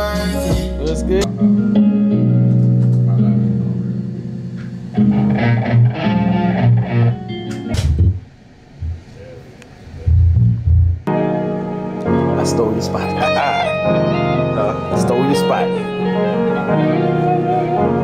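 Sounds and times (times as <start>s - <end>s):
guitar chords: 0.0s - 9.1s, 10.1s - 18.0s
bass notes: 0.0s - 9.3s, 10.0s - 18.0s.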